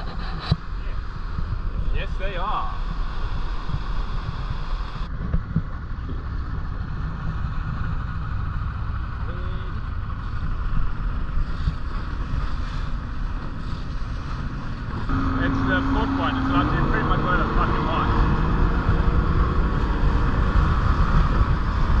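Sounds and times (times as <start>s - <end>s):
wind on microphone: 0.0s - 22.0s
boat outboard motors droning: 2.2s - 22.0s.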